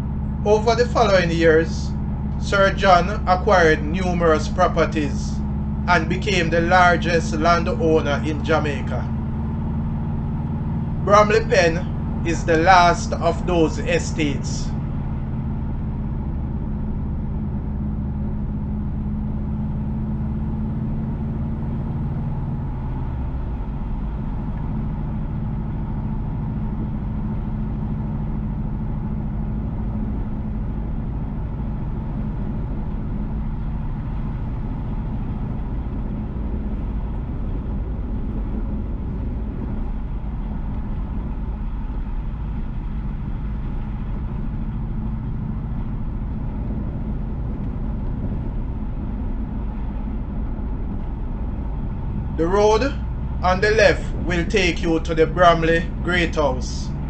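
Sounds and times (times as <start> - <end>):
car engine hum: 0.0 - 57.0.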